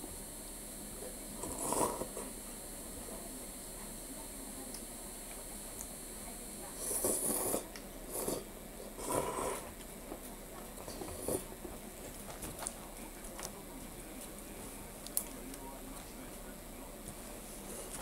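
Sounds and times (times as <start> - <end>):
muffled voices from television: 0.0 - 18.0.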